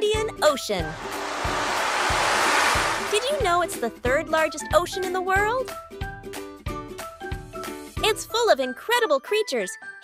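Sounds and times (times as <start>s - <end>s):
wave-like whoosh: 0.8s - 4.1s.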